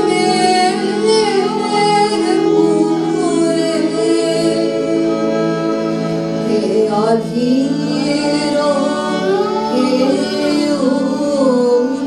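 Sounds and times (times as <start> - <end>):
harmonium: 0.0 - 12.0
keyboard: 0.0 - 12.0
violin: 0.0 - 12.0
woman singing: 0.0 - 12.0.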